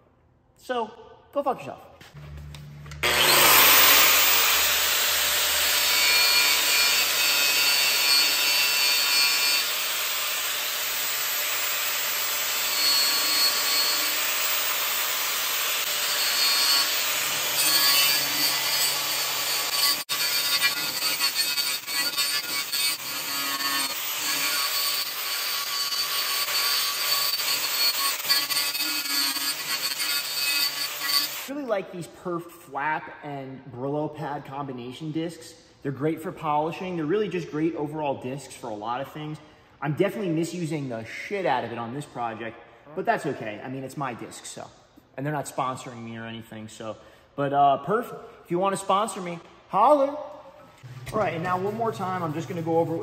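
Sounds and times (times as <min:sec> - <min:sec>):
angle grinder whine: 0:02.2 - 0:22.0.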